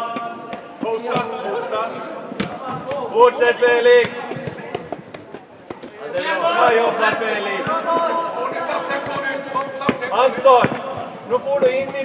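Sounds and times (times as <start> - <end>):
faint distant voices: 0.0 - 12.0
footsteps and ball kicks on turf: 0.1 - 12.0.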